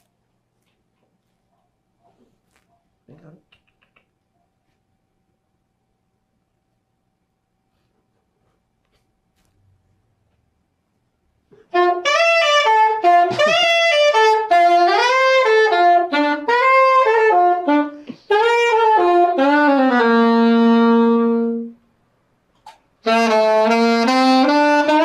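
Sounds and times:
solo saxophone melody: 11.6 - 21.8, 23.0 - 25.0.

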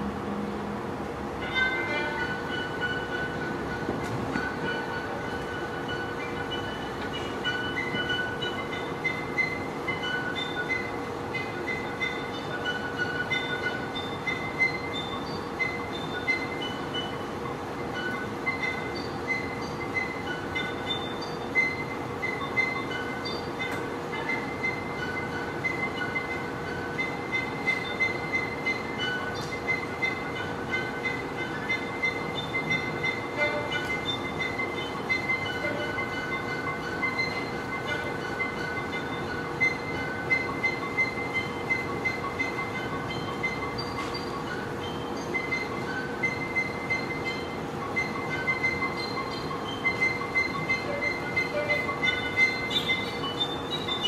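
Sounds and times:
noisy haze: 0.0 - 54.0
steady drone: 0.0 - 54.0
short high squealing tones: 4.4 - 17.2, 17.8 - 54.0.

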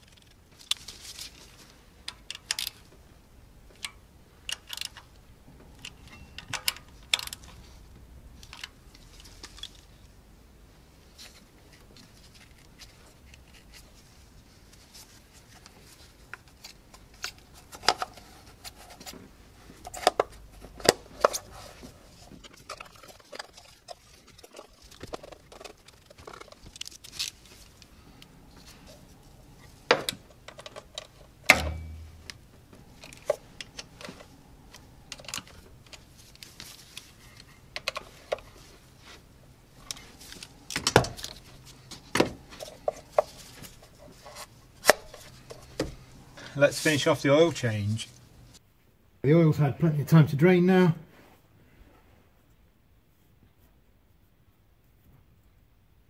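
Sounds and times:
heavy thump: 31.5 - 32.3.

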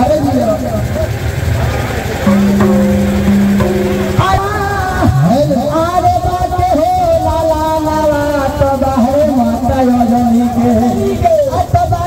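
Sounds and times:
crowd voices: 0.8 - 6.5
low horn-like tone: 2.3 - 4.4.

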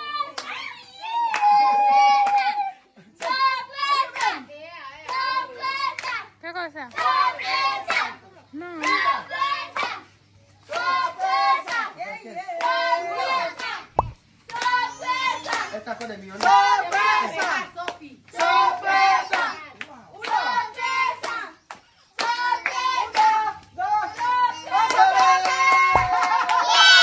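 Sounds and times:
sharp knock: 26.0 - 26.2.

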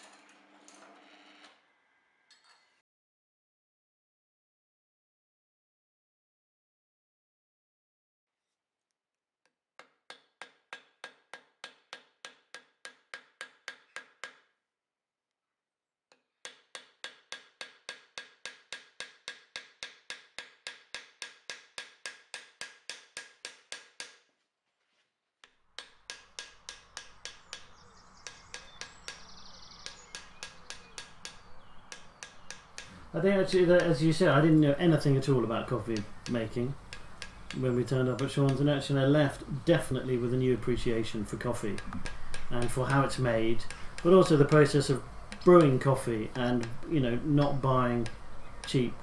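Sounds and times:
small hammer striking metal: 9.8 - 14.5, 16.1 - 24.3, 25.4 - 33.1, 36.0 - 38.6, 41.7 - 45.7.

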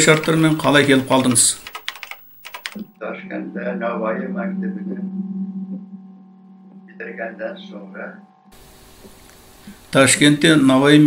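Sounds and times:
man talking: 0.0 - 1.7, 6.9 - 8.2, 9.9 - 11.0
sharp clicks: 0.0 - 2.9
steady hum: 4.1 - 11.0.

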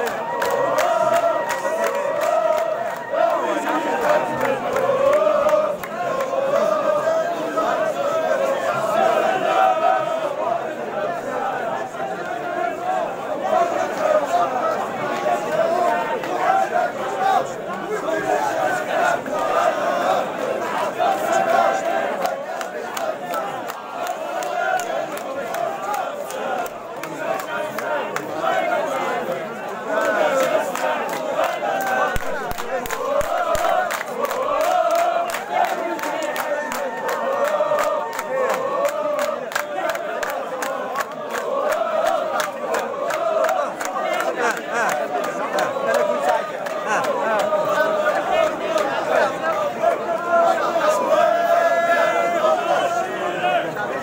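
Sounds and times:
crowd chanting and shouting: 0.0 - 54.0.

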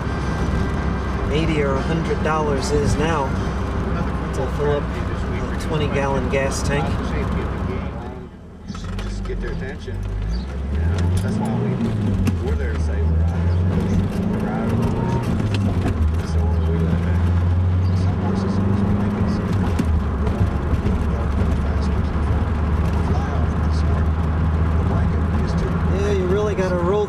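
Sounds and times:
car engine and road drone: 0.0 - 27.0.

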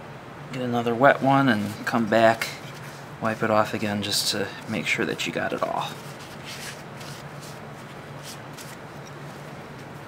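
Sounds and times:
steady low hum: 0.0 - 10.0
wet paper towel rubbing on steel: 1.3 - 9.6.

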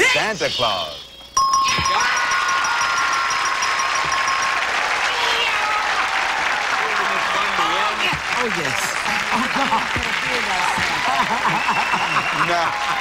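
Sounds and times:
electronic game-show chime: 1.3 - 5.6
people shouting: 1.7 - 4.1
audience applauding: 2.0 - 13.0.

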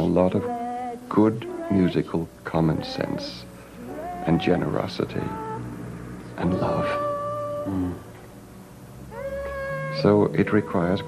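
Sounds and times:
high voice singing a held note: 2.7 - 5.7, 6.4 - 8.1, 9.1 - 11.0.

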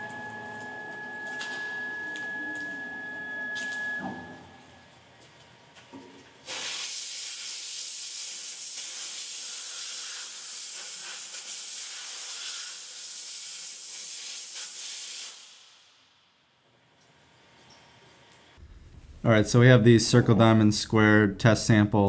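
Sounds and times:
compressed air blow gun hissing: 6.4 - 15.7.

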